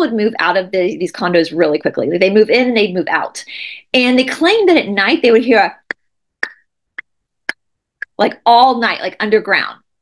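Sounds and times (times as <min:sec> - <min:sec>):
sharp mouth clicks: 0:05.8 - 0:08.2.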